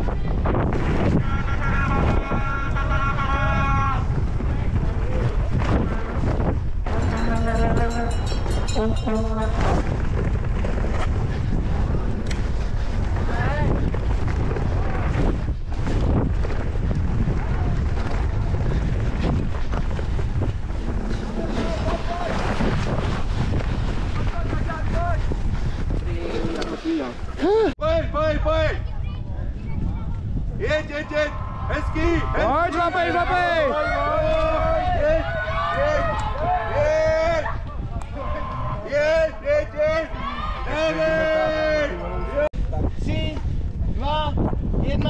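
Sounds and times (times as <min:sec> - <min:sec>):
wind buffeting microphone: 0:00.0 - 0:45.0
bike knocking and rattling: 0:04.2 - 0:26.9
people shouting: 0:30.8 - 0:42.5.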